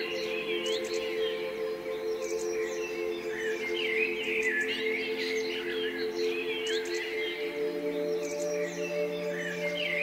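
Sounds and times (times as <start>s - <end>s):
soft sustained music tones: 0.0s - 10.0s
songbirds chirping: 0.0s - 10.0s.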